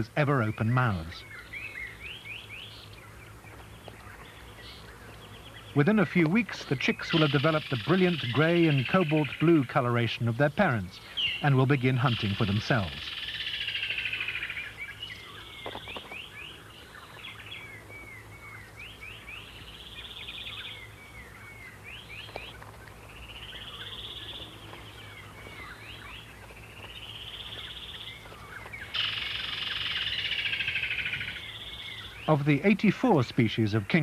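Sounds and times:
kingfisher trilled calls: 27.0 - 32.4.

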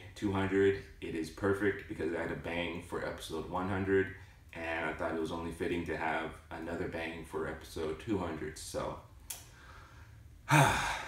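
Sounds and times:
man sighing: 10.4 - 11.0.

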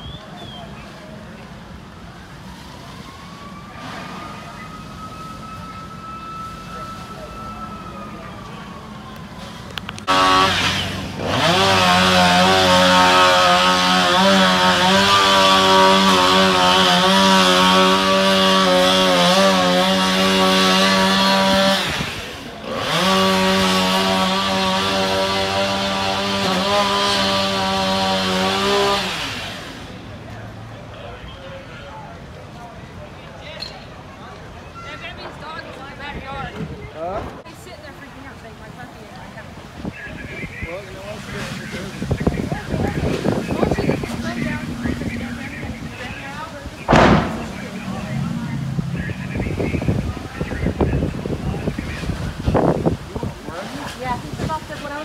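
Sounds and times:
small engine running at high speed: 10.1 - 29.9.

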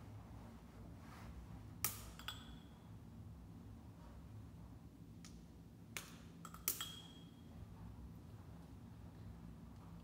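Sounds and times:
faint low hum: 0.0 - 10.0
sharp snap: 1.8 - 2.3.

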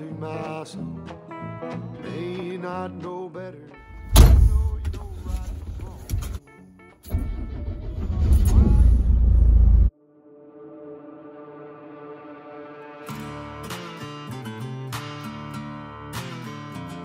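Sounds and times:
country song with male singer: 0.0 - 6.6
loud low rumble in lorry cab: 3.9 - 6.4, 7.1 - 9.9.

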